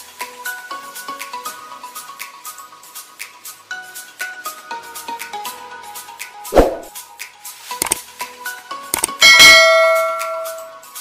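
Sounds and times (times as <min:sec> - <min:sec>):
light background music: 0:00.0 - 0:11.0
click: 0:07.8 - 0:08.0, 0:09.0 - 0:09.2.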